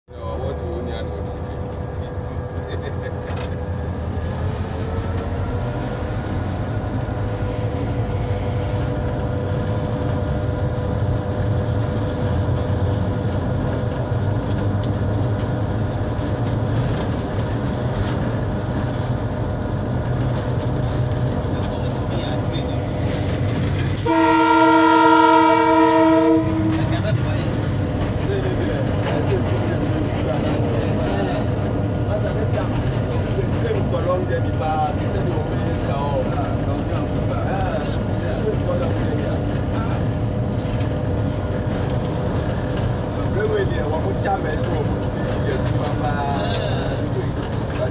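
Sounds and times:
diesel locomotive rumbling: 0:00.1 - 0:47.9
locomotive horn blast: 0:24.0 - 0:27.2.

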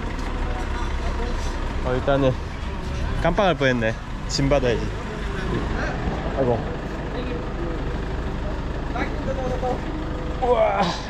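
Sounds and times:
people's voices: 0:00.0 - 0:11.0
vehicle engine idling: 0:00.0 - 0:11.0.

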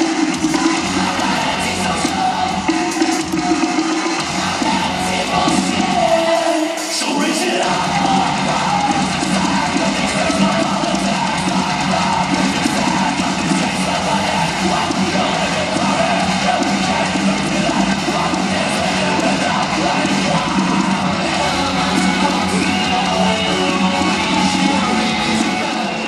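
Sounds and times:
bass guitar: 0:00.0 - 0:06.3, 0:07.6 - 0:26.0
rock music with electric guitar: 0:00.0 - 0:26.0.

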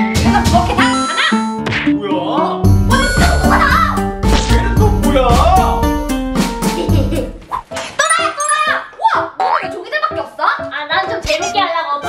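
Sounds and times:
bouncy cartoon background music: 0:00.0 - 0:12.0
comic cartoon sound effect: 0:02.9 - 0:04.0, 0:08.0 - 0:09.7.

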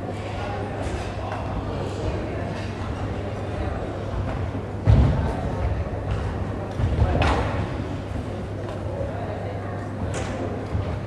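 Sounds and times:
low hum of sports hall: 0:00.0 - 0:11.0.

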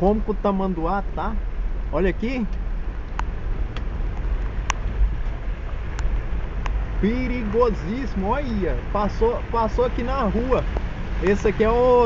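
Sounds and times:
car running noise: 0:00.0 - 0:12.0.

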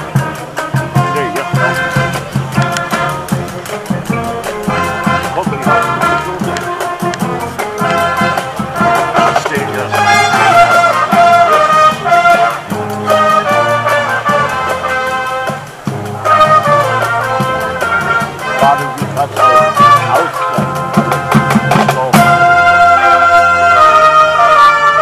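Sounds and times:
marching drum beat: 0:00.0 - 0:25.0
trumpets and bass horns: 0:00.0 - 0:25.0.

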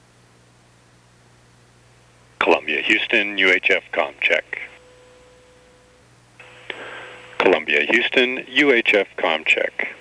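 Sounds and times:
faint radio hiss: 0:00.0 - 0:10.0
radio static: 0:02.4 - 0:05.8, 0:06.4 - 0:10.0.

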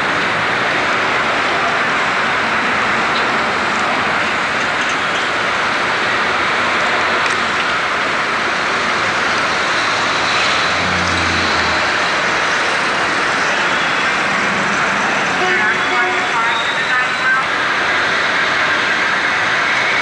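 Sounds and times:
street traffic noise: 0:00.0 - 0:20.0.

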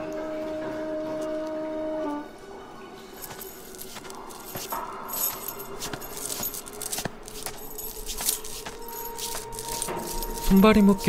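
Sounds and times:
metal chains clinking: 0:03.1 - 0:11.0.

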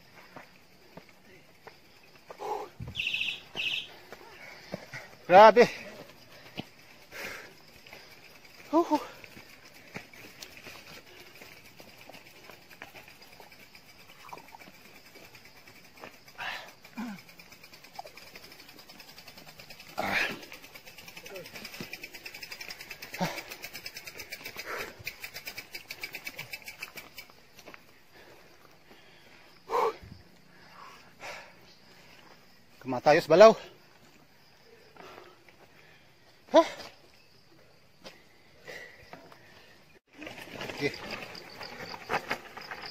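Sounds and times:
distant shouts and voices: 0:01.2 - 0:09.8.

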